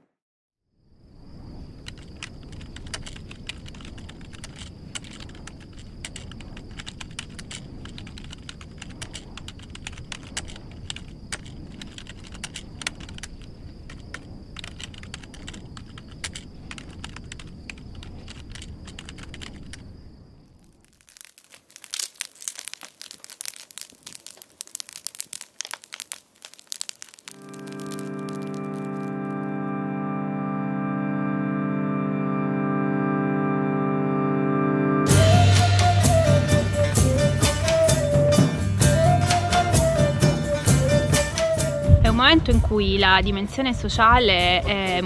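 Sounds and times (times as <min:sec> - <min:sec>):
sharp irregular crackles: 0:01.4 - 0:29.5.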